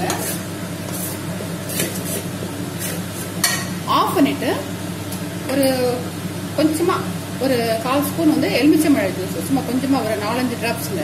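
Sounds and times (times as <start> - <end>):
wooden spatula scraping a pan: 0.0 - 3.5
steady low hum: 0.0 - 11.0.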